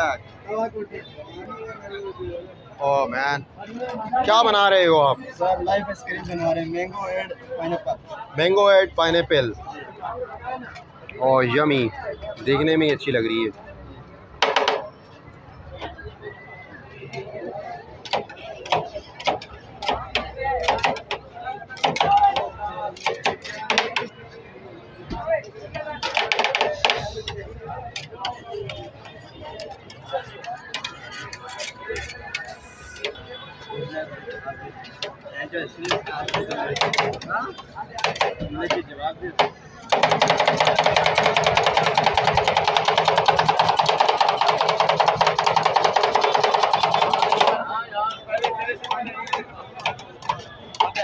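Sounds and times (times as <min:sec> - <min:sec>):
spatulas chopping on metal plate: 0:18.0 - 0:21.2
metal spatulas chopping and scraping: 0:29.9 - 0:33.2.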